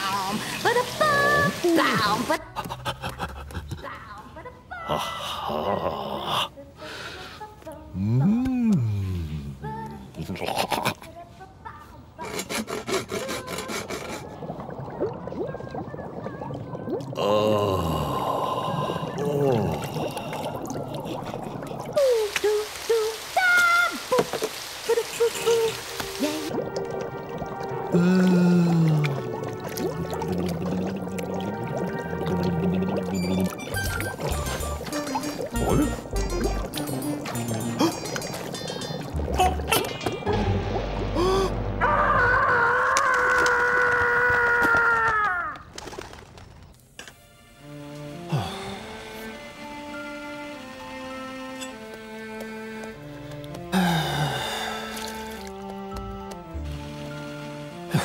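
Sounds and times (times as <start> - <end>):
water pouring: 0.0 - 2.4, 13.2 - 41.5, 54.2 - 55.8
cartoon background music: 25.4 - 42.5
comic sound effects: 39.1 - 42.6.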